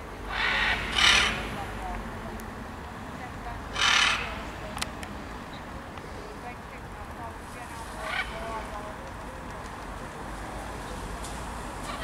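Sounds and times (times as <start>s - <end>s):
macaw squawking harshly: 0.3s - 1.6s, 3.7s - 4.5s.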